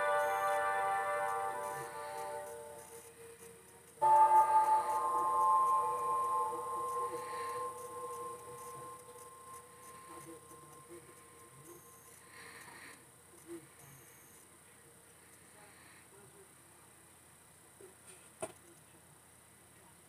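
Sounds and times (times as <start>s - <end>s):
sustained orchestral chord: 0.0s - 3.3s, 4.0s - 12.0s.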